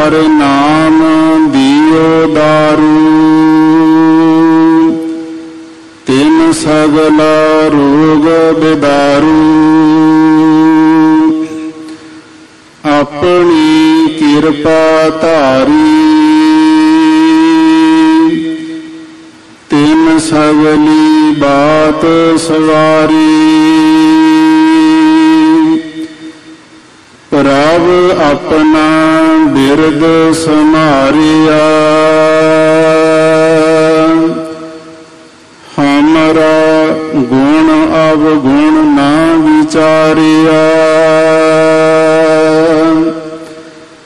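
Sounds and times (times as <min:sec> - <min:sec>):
harmonium holding a long note: 0:00.0 - 0:26.7.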